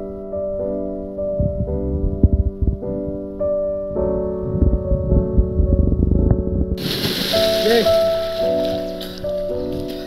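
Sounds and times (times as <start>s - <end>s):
keyboard background music: 0.0s - 10.0s
water splashing: 6.8s - 10.0s.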